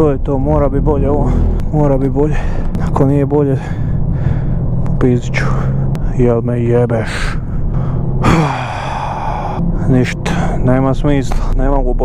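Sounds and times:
car engine hum: 0.0 - 12.0
man sighing: 7.5 - 9.6.

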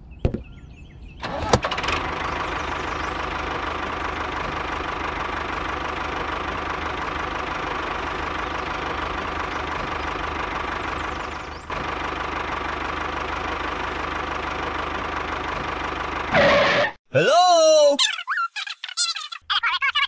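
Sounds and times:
tractor engine running: 1.0 - 17.0.

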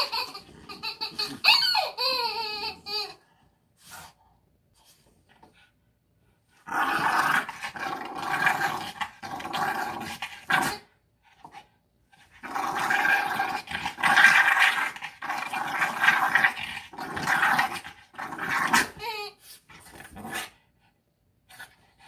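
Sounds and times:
dog play-growling: 0.0 - 3.2, 6.6 - 20.8
dog wavering cry: 0.0 - 3.2.

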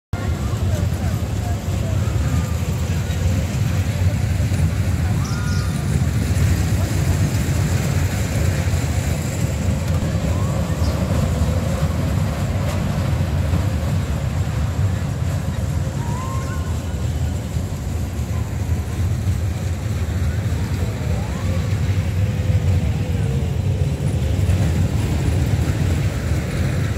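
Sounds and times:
crowd voices: 0.2 - 26.9
low machine rumble: 0.2 - 26.9.

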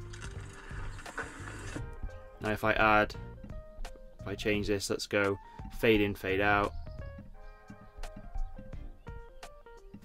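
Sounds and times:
mountain bike riding rush: 0.0 - 1.9
background music: 0.0 - 10.0.

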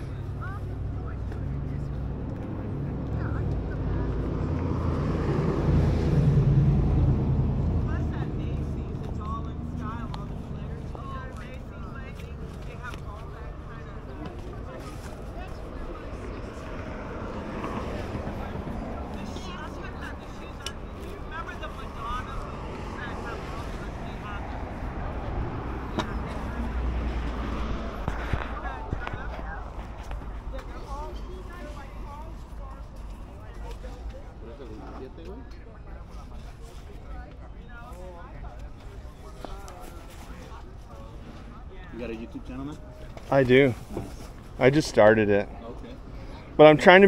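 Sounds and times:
steady low rumble: 0.0 - 33.8
distant voices: 0.0 - 47.0
engine passing by: 0.0 - 47.0.

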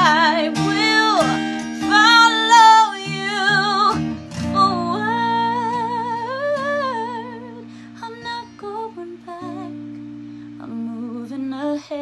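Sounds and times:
woman singing with vibrato: 0.0 - 10.0, 10.6 - 12.0
acoustic guitar chord: 0.0 - 12.0.

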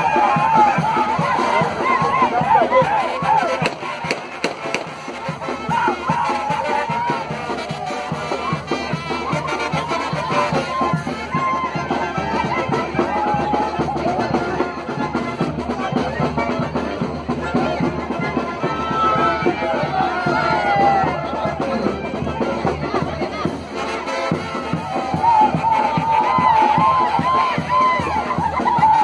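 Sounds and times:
brass band dance music: 0.0 - 29.0
crowd noise: 0.0 - 29.0.

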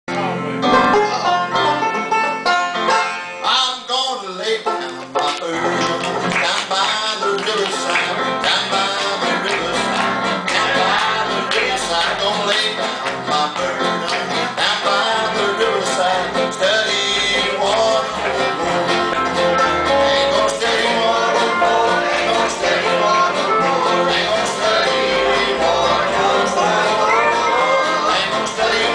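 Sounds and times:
banjo picking: 0.1 - 28.9
man singing gospel song: 3.4 - 28.9.

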